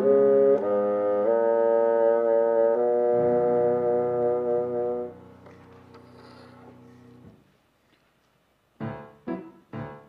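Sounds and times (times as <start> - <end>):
bassoon playing slow melody: 0.0 - 6.4
lower accompanying part: 0.0 - 7.4.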